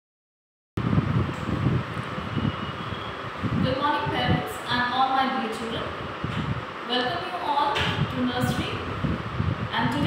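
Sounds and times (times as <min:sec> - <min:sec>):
fan air buffeting microphone: 0:00.8 - 0:10.0.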